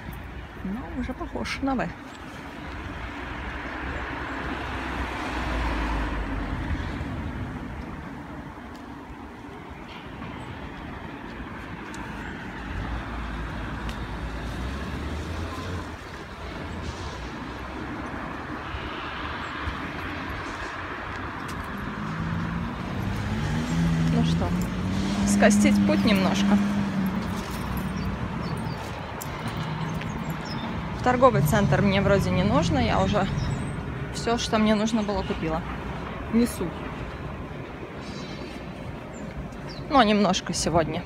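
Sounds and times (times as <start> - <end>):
cars driving past: 0.0 - 41.0.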